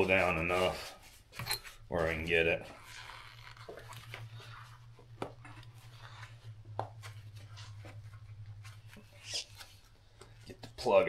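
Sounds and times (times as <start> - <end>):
gloved hands handling metal parts: 0.0 - 11.0
steady low hum: 0.0 - 11.0.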